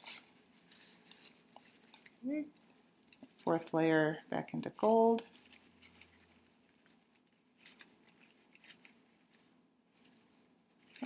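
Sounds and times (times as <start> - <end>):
paper napkins rustling: 0.0 - 3.6, 4.8 - 11.0
small paper crackles: 4.8 - 9.5.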